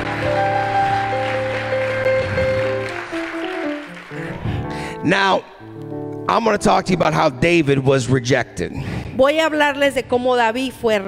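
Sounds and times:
electric keyboard sustained chords: 0.0 - 7.4.

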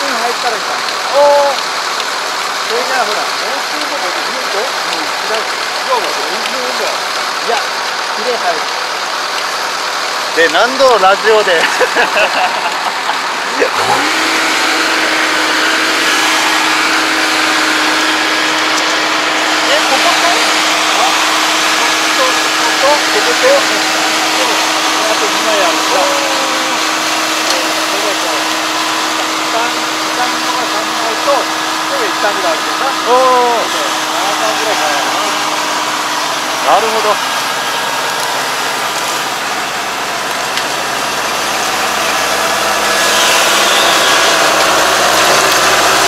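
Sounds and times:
diesel engine running: 0.0 - 46.0
person speaking: 2.6 - 8.8, 10.3 - 37.4.

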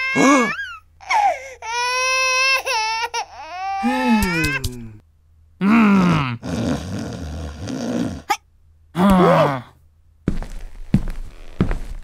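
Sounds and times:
cartoon voice groaning: 0.1 - 0.6, 3.8 - 5.0, 5.6 - 6.6, 9.0 - 9.7.

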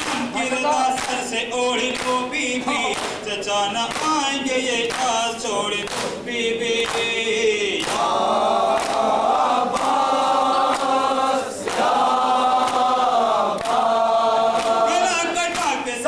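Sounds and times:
men chanting in unison: 0.0 - 16.0.

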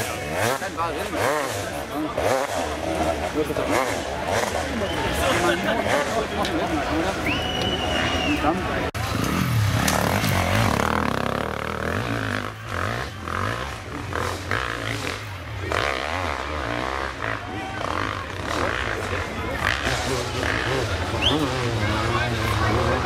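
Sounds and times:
motorcycle engine revving: 0.0 - 7.2, 8.8 - 23.0
spectators talking: 0.0 - 23.0.

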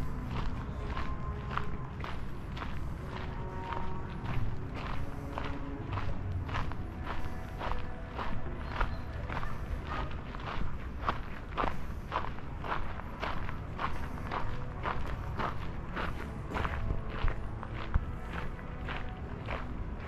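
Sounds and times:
footsteps walking: 0.0 - 20.0.

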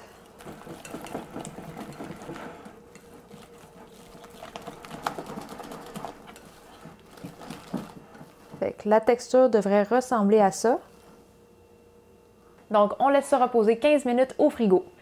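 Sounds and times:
whisk beating batter in glass bowl: 0.4 - 8.6.

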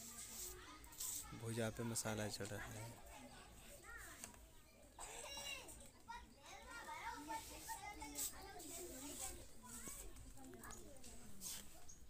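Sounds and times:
faint background voices: 0.0 - 12.0.

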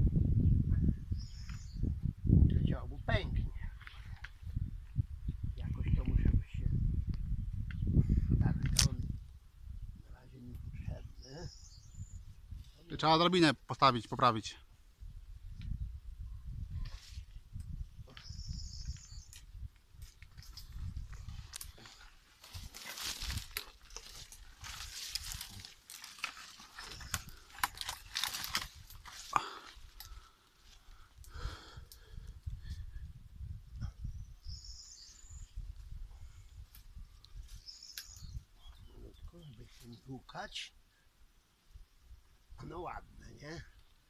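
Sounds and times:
wind rumble on microphone: 0.0 - 13.0, 14.6 - 25.7, 26.7 - 39.7
rustling of leaves and branches: 16.5 - 42.6.

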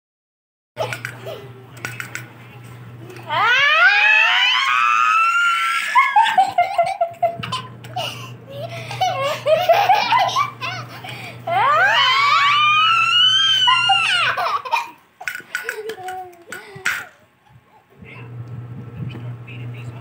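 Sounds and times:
toddler squealing laughter: 5.0 - 10.9, 11.8 - 15.0
woman laughing: 5.8 - 12.0, 13.6 - 15.0.

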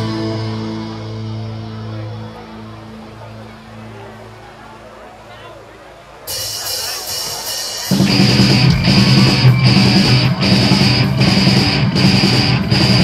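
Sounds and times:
heavy metal band playing live: 0.0 - 3.0, 6.3 - 13.0.

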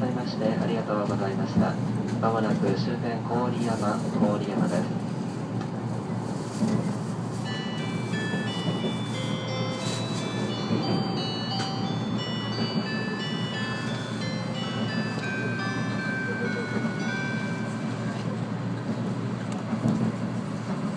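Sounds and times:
train rumbling along track: 0.0 - 20.9
chime melody over pa: 7.5 - 18.2.

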